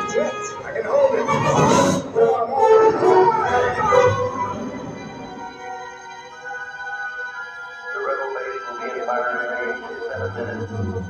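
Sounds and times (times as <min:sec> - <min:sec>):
orchestra playing sustained chords: 0:00.0 - 0:11.0.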